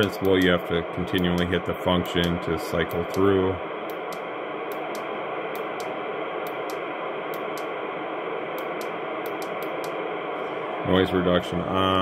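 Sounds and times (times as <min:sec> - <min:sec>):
radio receiver static: 0:00.0 - 0:12.0.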